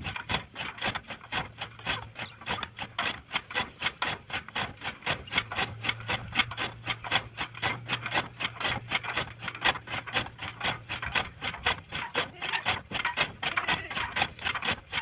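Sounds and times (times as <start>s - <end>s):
chaff cutter chopping fodder: 0.0s - 15.0s.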